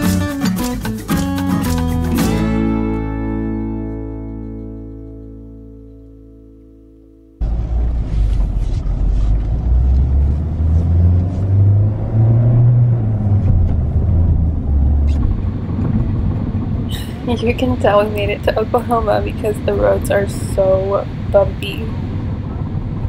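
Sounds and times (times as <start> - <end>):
acoustic guitar chord: 0.0 - 7.4
engine and road noise: 0.0 - 23.0.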